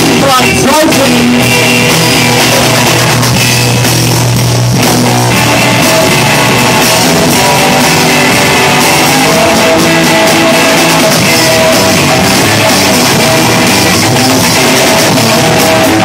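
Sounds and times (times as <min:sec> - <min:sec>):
drum kit: 0:00.0 - 0:16.0
electric guitar: 0:00.0 - 0:16.0.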